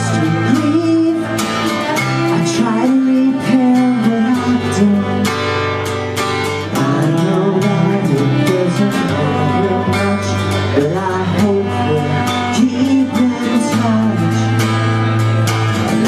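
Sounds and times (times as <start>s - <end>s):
bowed cello: 0.0s - 16.0s
strummed acoustic guitars: 0.0s - 16.0s.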